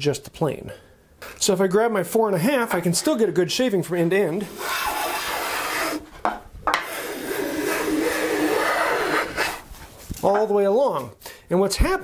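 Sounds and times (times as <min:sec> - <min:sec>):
hand plane shaving wood: 0:04.4 - 0:06.0, 0:06.8 - 0:09.6.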